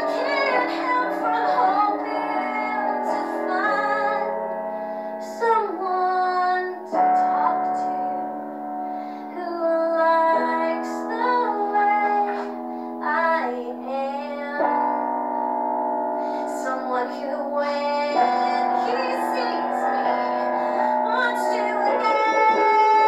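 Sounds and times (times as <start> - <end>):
woman singing: 0.0 - 4.4, 5.2 - 8.4, 9.2 - 15.0, 16.3 - 23.0
piano backing track: 0.0 - 23.0.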